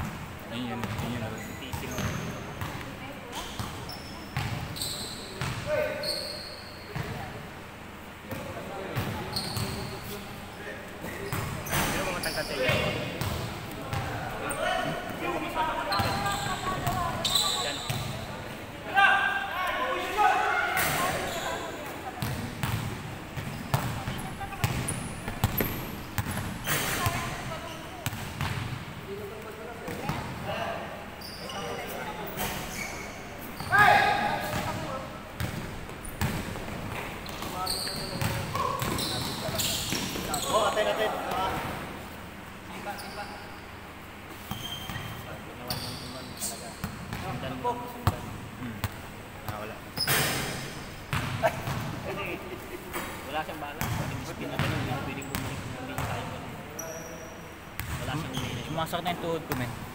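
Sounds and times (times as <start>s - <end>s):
basketball bouncing on indoor court: 0.0s - 6.2s, 11.0s - 14.3s, 15.9s - 18.4s, 22.1s - 30.4s, 33.6s - 40.6s, 48.0s - 52.0s, 53.8s - 56.4s, 57.8s - 58.7s.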